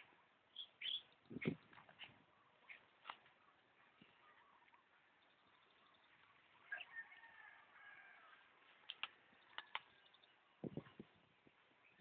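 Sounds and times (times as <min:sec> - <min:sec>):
short bird chirps: 0:00.5 - 0:01.6.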